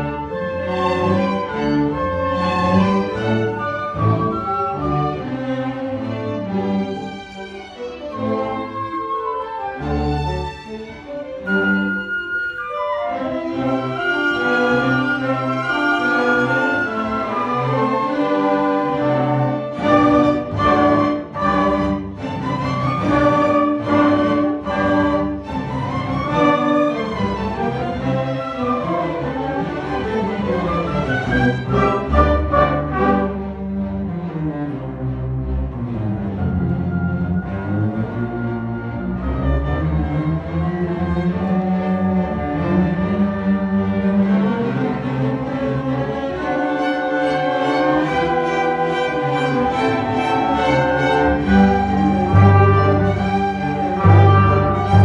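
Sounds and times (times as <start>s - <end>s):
cellos playing: 0.0s - 55.0s
violins playing: 0.0s - 55.0s
double bass notes: 30.1s - 44.6s, 47.2s - 55.0s.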